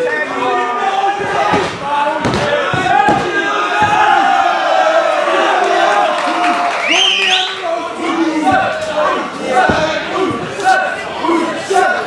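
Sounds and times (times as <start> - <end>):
crowd yelling: 0.0 - 12.0.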